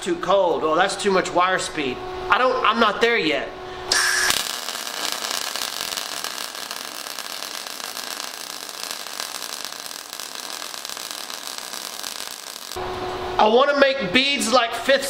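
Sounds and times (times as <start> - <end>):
welding arc crackling and hissing: 4.0 - 12.8.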